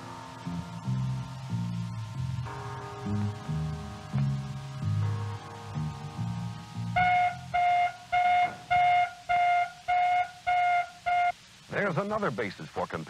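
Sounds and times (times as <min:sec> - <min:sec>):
car alarm blasts: 0:07.0 - 0:11.4.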